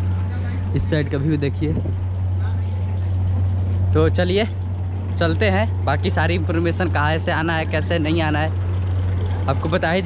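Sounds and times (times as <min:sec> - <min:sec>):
steady low hum: 0:00.0 - 0:10.0
man speaking: 0:00.2 - 0:03.2.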